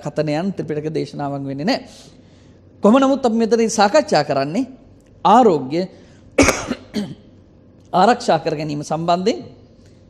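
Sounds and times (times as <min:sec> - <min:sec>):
person coughing: 0:06.4 - 0:07.3.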